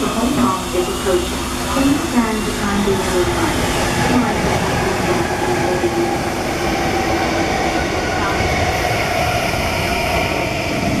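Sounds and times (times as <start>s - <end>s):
electric train passing: 0.0s - 11.0s.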